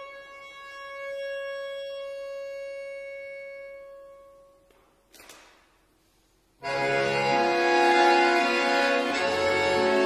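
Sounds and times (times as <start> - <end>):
accordion holding a long note: 0.0 - 4.5, 6.6 - 10.0.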